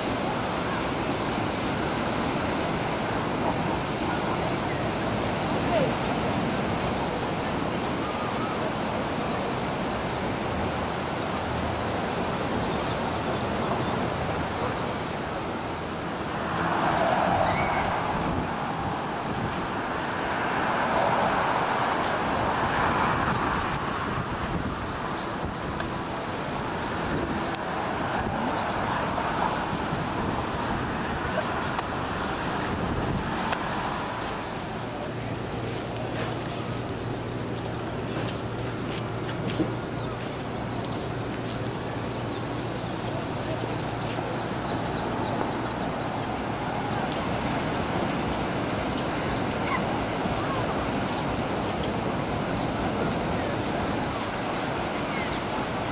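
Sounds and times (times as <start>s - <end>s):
cars passing by: 0.0s - 55.9s.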